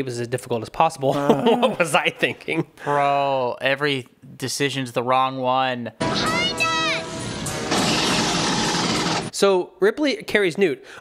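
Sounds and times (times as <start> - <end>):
flames roaring: 7.2 - 9.3
weapons fire: 7.4 - 9.3.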